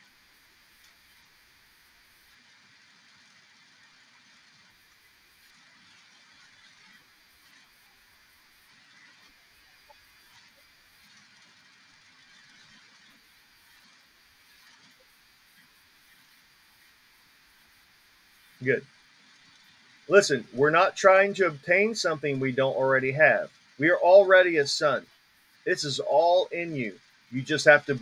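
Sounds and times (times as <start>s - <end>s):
faint recording hiss: 0.0s - 28.0s.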